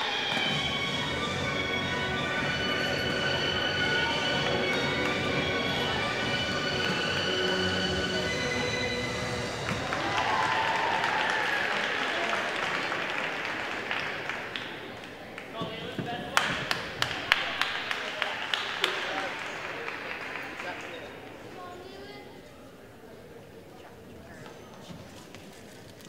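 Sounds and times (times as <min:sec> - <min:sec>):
distant background music: 0:00.0 - 0:10.6
applause: 0:09.5 - 0:21.6.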